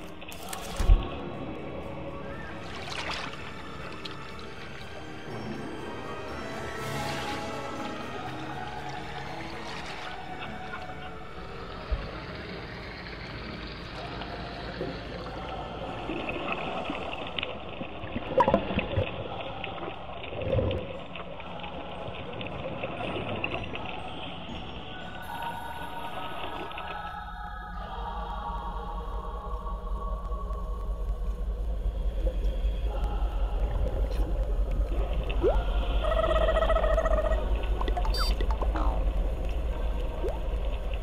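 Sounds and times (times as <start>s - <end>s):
background music: 0.0s - 41.0s
underwater bubbling: 9.7s - 24.0s, 25.3s - 41.0s.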